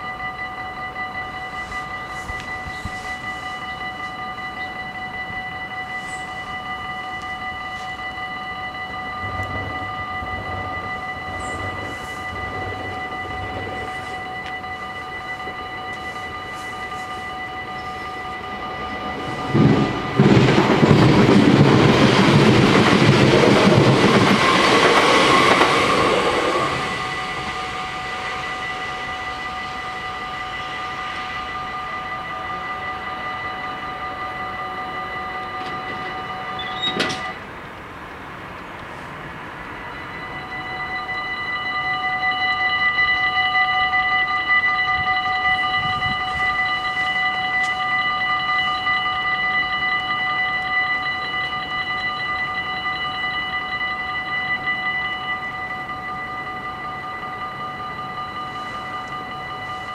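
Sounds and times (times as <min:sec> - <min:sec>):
level crossing warning bells: 0:00.0 - 0:59.9
train passing: 0:00.0 - 0:59.9.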